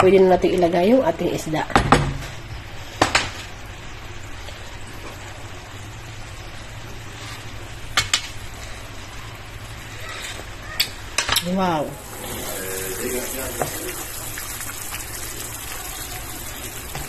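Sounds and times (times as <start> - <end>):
sauce simmering in a pan: 12.0 - 17.0.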